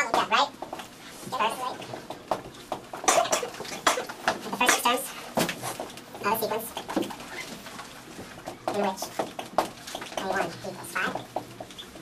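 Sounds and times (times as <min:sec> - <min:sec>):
marker squeaking on whiteboard: 0:05.7 - 0:07.7, 0:08.4 - 0:12.0.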